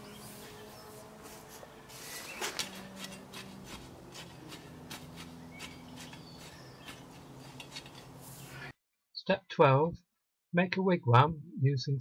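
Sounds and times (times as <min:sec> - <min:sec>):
birds chirping faintly: 0:00.0 - 0:08.7
garden tool scraping stony soil: 0:00.0 - 0:08.7.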